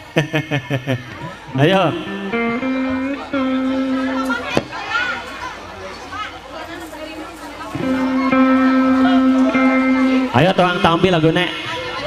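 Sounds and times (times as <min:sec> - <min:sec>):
electronic keyboard holding notes: 0:01.6 - 0:04.6, 0:07.8 - 0:11.8.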